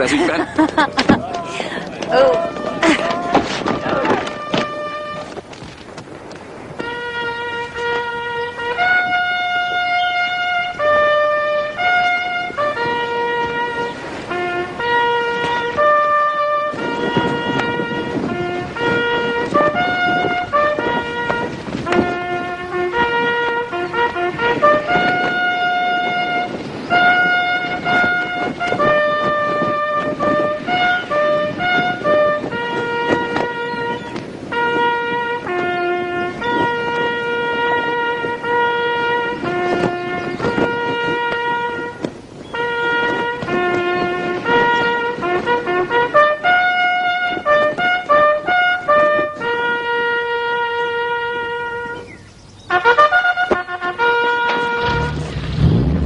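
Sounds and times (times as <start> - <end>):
bugle call: 1.4 - 5.4, 6.8 - 55.7.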